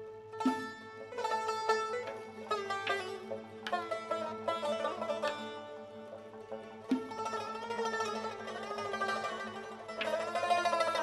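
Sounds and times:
plucked lutes: 0.0 - 11.0
struck strings: 0.3 - 11.0.

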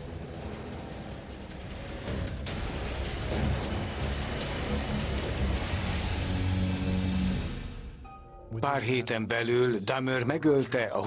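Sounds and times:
dark droning background music: 0.0 - 8.6.

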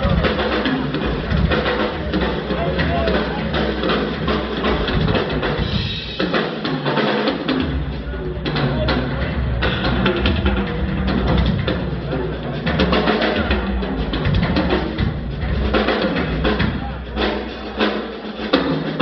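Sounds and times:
drum kit solo: 0.0 - 19.0.

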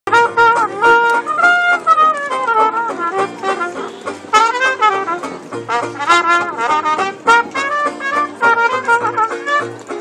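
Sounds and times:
alto saxophone: 0.1 - 10.0
banjo: 0.1 - 10.0
double bass: 0.1 - 10.0
trumpet: 0.1 - 10.0.

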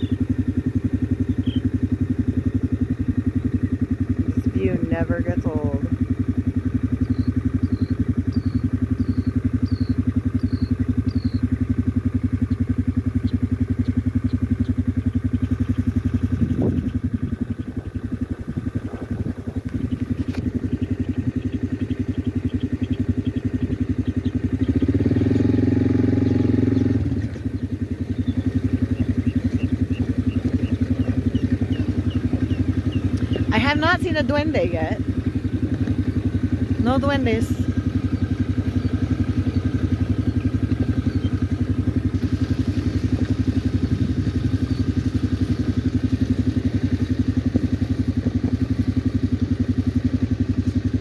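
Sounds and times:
bird chirping: 0.0 - 0.3, 1.0 - 1.8, 6.9 - 11.5, 12.4 - 18.2, 19.6 - 25.0, 26.2 - 34.9, 36.3 - 41.5
engine running steadily: 0.0 - 51.0.

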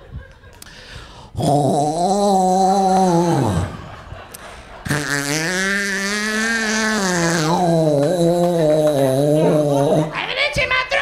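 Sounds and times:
man making guttural throat noise: 1.2 - 4.0, 4.8 - 10.2.

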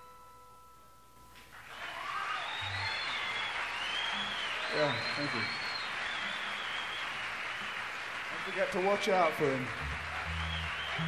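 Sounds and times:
audience applause and cheering: 1.5 - 11.0.

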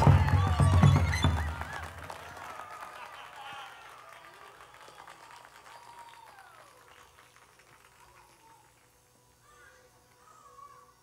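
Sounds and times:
crowd sounds: 0.0 - 7.2.

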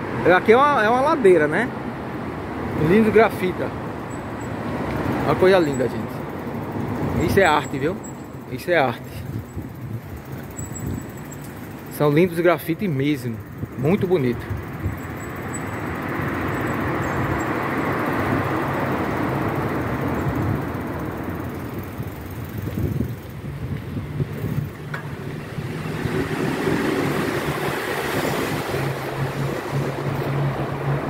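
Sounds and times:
traffic echoing in underpass: 0.0 - 31.0
vehicle engine hum: 0.0 - 31.0.

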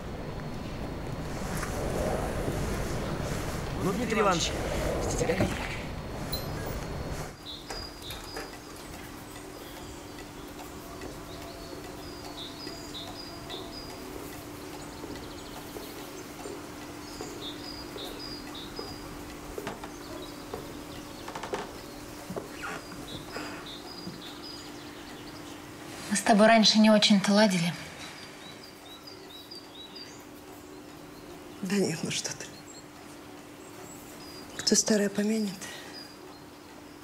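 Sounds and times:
small birds chirping: 0.0 - 37.0.

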